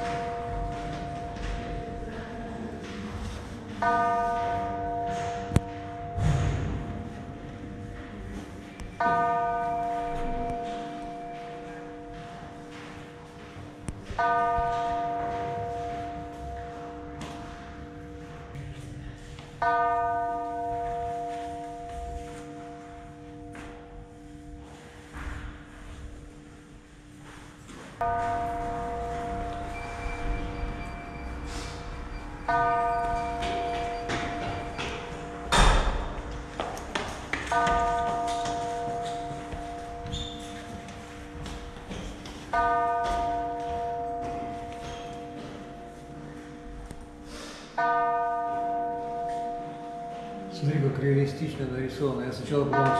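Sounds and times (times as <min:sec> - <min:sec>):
loud thump: 0:06.2 - 0:07.0
slow bell-like chimes: 0:28.0 - 0:35.7.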